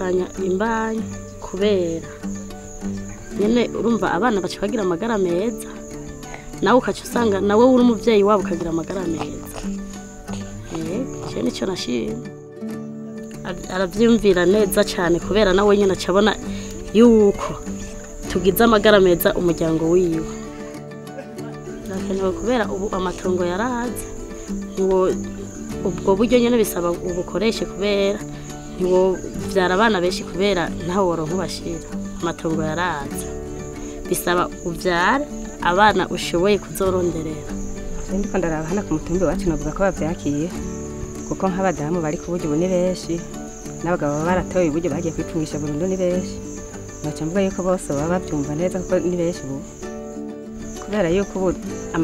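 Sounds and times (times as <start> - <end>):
woman speaking: 0.0 - 2.2, 3.3 - 5.9, 6.5 - 12.3, 13.4 - 20.4, 21.8 - 33.4, 34.0 - 40.7, 41.3 - 46.4, 47.0 - 49.7, 50.8 - 52.0
woman talking: 0.0 - 2.2, 3.3 - 5.9, 6.5 - 12.3, 13.4 - 20.4, 21.8 - 33.4, 34.0 - 40.7, 41.3 - 46.4, 47.0 - 49.7, 50.8 - 52.0
crickets chirring: 0.0 - 52.0
soft music with held tones: 0.0 - 52.0.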